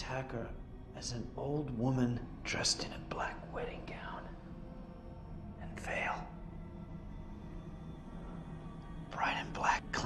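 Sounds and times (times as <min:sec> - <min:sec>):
low steady drone: 0:00.0 - 0:10.0
person whispering: 0:03.1 - 0:04.3, 0:05.6 - 0:06.3, 0:09.1 - 0:10.0.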